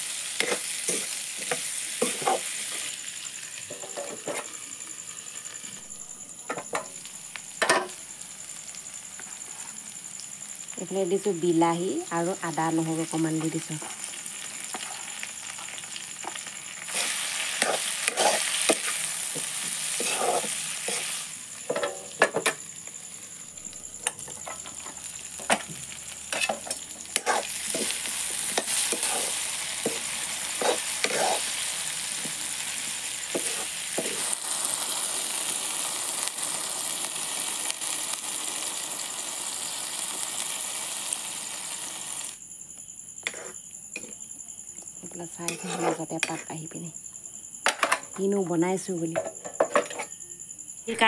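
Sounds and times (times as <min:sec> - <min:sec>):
food sizzling in a pan: 0:00.0 - 0:42.4, 0:43.2 - 0:44.3, 0:45.0 - 0:46.8
spatula scraping a pan: 0:00.4 - 0:02.9, 0:03.7 - 0:04.6, 0:16.2 - 0:22.4, 0:26.3 - 0:32.2, 0:33.2 - 0:34.4, 0:43.2 - 0:44.1, 0:45.4 - 0:46.5.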